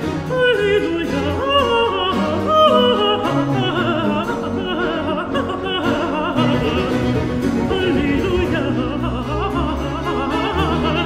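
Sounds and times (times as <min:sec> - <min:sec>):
baroque orchestra: 0:00.0 - 0:11.0
countertenor singing with vibrato: 0:00.0 - 0:11.0.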